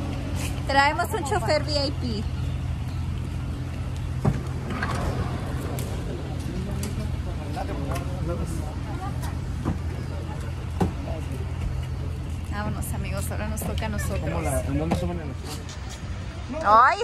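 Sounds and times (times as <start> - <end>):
knocks of people boarding: 2.6 - 14.1.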